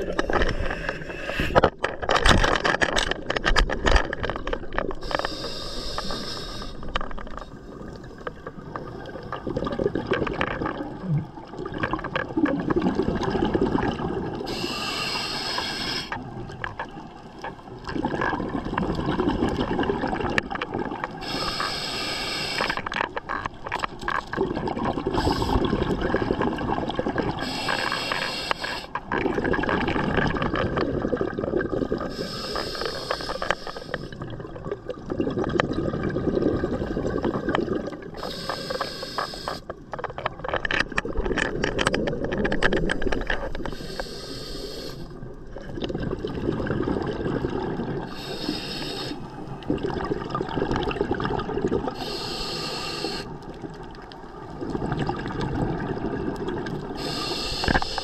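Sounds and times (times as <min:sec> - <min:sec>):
regulator hissing inhale: 0:00.1 - 0:01.6, 0:05.0 - 0:07.0, 0:14.5 - 0:16.2, 0:21.2 - 0:22.8, 0:25.2 - 0:25.7, 0:27.4 - 0:29.0, 0:32.1 - 0:34.2, 0:38.2 - 0:39.7, 0:43.6 - 0:45.2, 0:48.1 - 0:49.3, 0:51.9 - 0:53.4, 0:57.0 - 0:58.0
bubbling exhale: 0:12.4 - 0:16.2, 0:21.2 - 0:22.8, 0:24.4 - 0:39.7, 0:43.0 - 0:53.6, 0:54.4 - 0:58.0.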